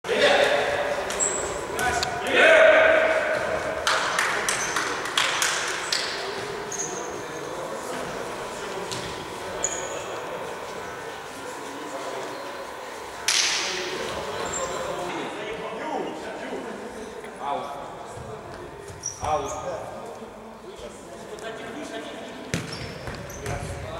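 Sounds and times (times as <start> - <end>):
sneakers squeaking on court: 5.8 - 11.0, 18.9 - 19.6, 22.5 - 23.8.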